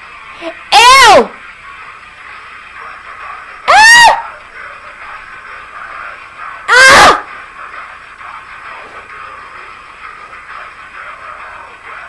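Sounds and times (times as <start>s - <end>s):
woman shrieking in disgust: 0.7s - 1.3s, 3.7s - 4.3s, 6.7s - 7.2s.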